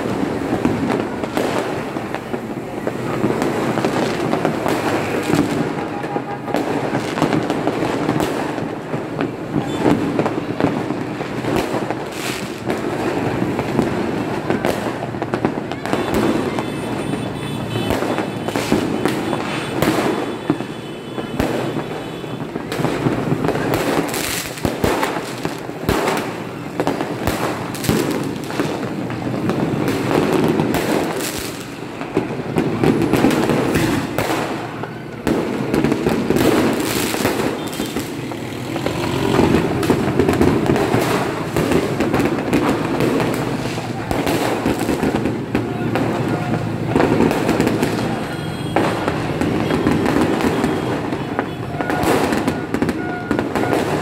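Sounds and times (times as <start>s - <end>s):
fireworks bangs and crackles: 0.0s - 54.0s.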